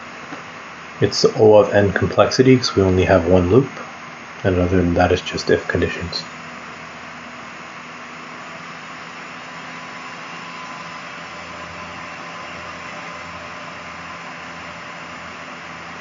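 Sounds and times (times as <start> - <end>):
steady hiss: 0.0 - 7.9.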